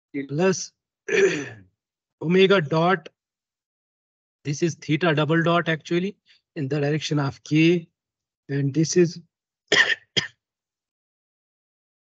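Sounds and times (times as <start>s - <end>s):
man clearing his throat: 1.1s - 1.6s, 9.7s - 10.3s.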